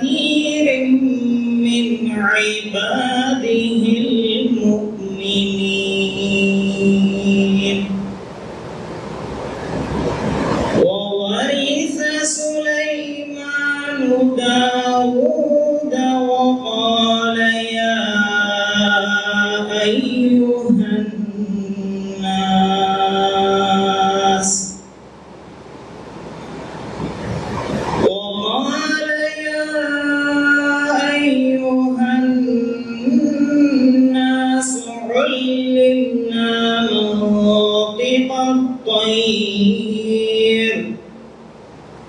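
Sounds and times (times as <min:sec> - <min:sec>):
man reciting through a microphone: 0:00.0 - 0:08.2, 0:10.8 - 0:24.9, 0:28.0 - 0:41.3
unpitched rushing noise: 0:08.1 - 0:10.9, 0:25.7 - 0:28.1.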